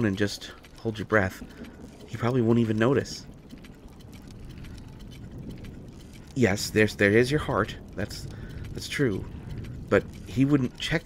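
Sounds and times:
scattered clicks and crackles: 0.0 - 11.0.

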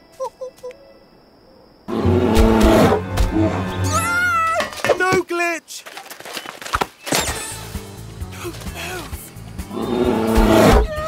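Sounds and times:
high wavering cartoon cries: 10.7 - 11.0.

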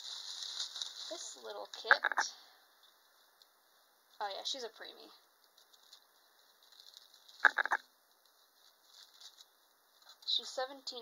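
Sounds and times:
plastic bag crinkling: 0.0 - 1.9, 5.4 - 10.4.

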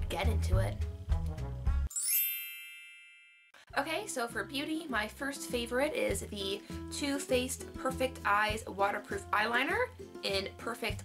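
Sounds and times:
background music with bass line: 0.0 - 1.9
shimmering chime sound effect: 1.9 - 3.6.

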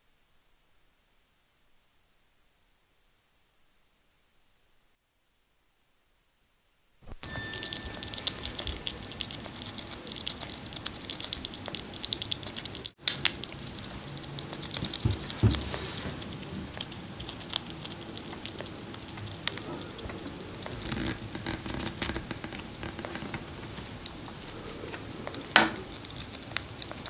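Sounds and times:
chipmunk chewing seeds: 7.2 - 27.0.

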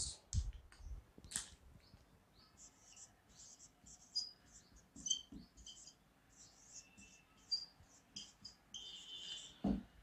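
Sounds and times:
marker squeaking on whiteboard: 2.3 - 10.0.

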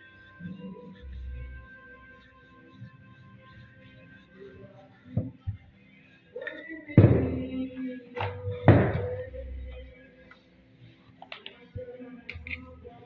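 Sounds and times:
faint music: 0.0 - 13.0.

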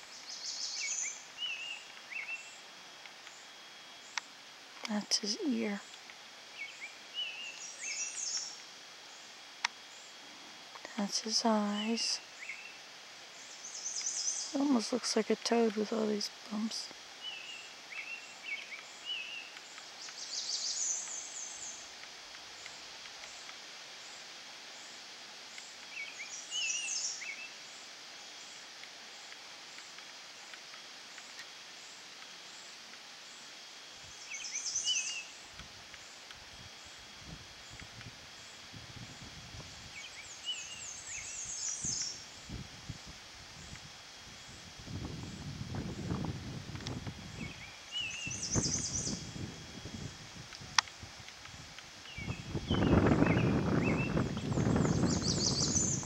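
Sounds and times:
songbird singing: 0.0 - 38.6, 39.6 - 42.6, 46.8 - 50.1, 52.0 - 56.0
low rumbling noise: 42.2 - 56.0.

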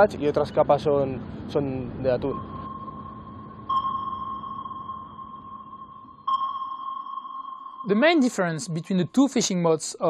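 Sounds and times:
sonar-style ping: 2.1 - 9.1.

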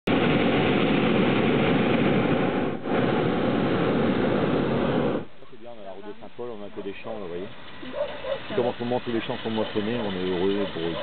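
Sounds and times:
propane burner blast: 0.1 - 5.4.

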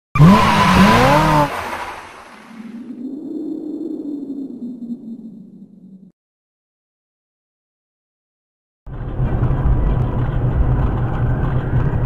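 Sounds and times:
car tyres squealing: 0.2 - 1.9
car engine revving: 0.2 - 2.0.

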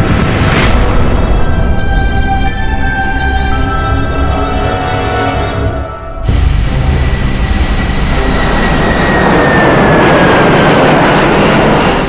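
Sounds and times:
jet airliner passing by: 0.0 - 12.0.

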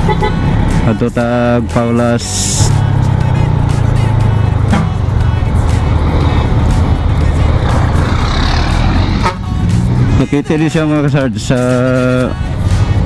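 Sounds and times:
motorcycle engine rumble: 0.0 - 13.0.

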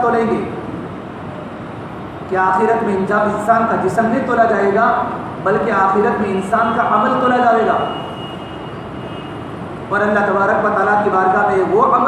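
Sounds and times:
steady hiss and rumble: 0.0 - 7.9, 8.7 - 12.0
man talking: 2.3 - 8.0, 9.9 - 12.0.

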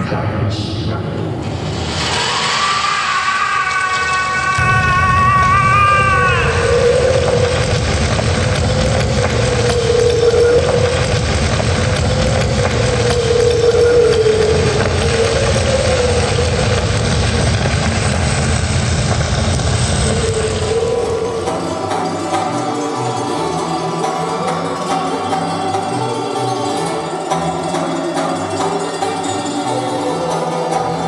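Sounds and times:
loud rumbling drone: 1.3 - 26.4.

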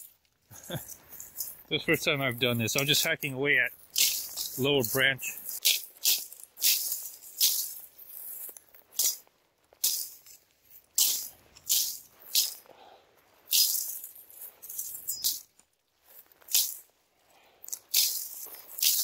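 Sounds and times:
dry stems crackling: 0.0 - 19.0
machete swishing through brush: 3.9 - 9.2, 9.8 - 10.2, 10.8 - 12.6, 17.9 - 19.0.

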